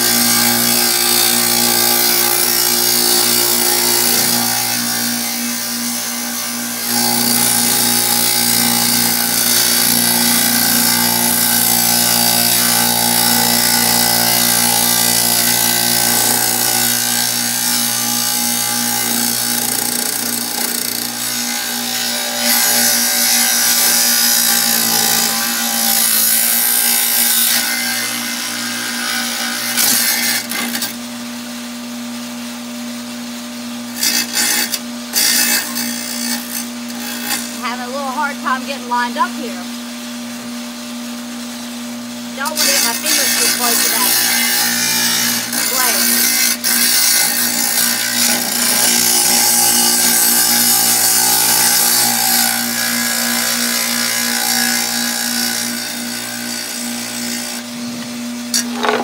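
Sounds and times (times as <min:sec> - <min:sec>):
saw blade grinding brick: 0:00.0 - 0:31.0, 0:33.9 - 0:39.3, 0:42.4 - 0:59.0
tile saw motor hum: 0:00.0 - 0:33.0, 0:33.8 - 0:40.6, 0:41.2 - 0:59.0.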